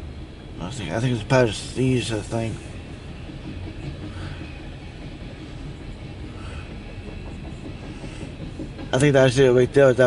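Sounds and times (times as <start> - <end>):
train wheels on rails: 0.0 - 10.0.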